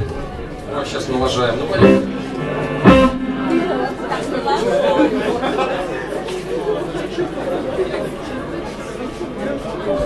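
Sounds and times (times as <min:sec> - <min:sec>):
chatter of many voices: 0:00.0 - 0:10.0
short steady tone: 0:01.8 - 0:04.6.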